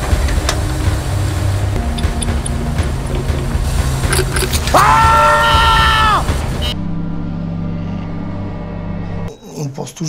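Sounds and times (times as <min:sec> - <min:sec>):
conveyor machinery rumble: 0:00.0 - 0:04.2.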